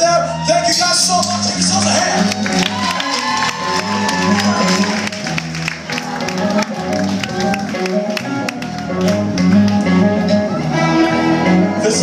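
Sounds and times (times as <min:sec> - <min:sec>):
live rock band: 0:00.6 - 0:12.0.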